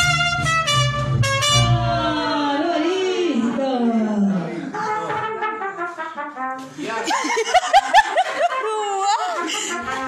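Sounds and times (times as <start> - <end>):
person laughing out loud: 7.1 - 9.8.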